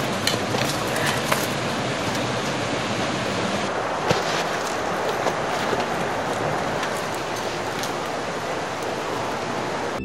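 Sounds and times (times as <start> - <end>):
steady rushing noise: 0.0 - 10.0
faint crackles: 4.0 - 10.0.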